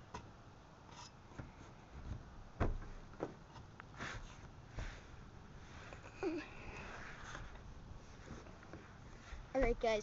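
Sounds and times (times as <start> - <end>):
knocks and scrapes on car roof: 1.3 - 5.1.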